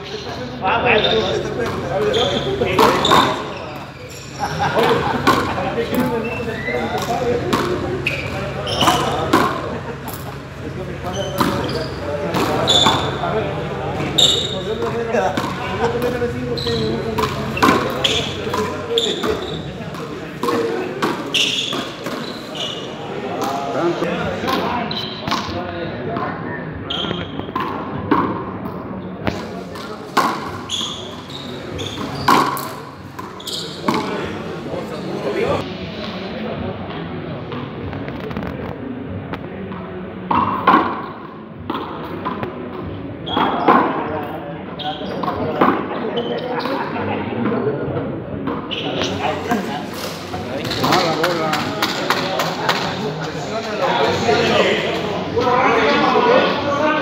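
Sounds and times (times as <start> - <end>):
ball struck with wooden paddles: 7.0 - 7.8, 17.2 - 22.2.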